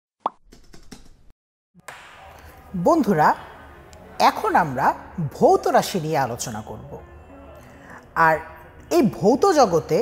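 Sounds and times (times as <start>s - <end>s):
sharp pop: 1.8s - 2.7s.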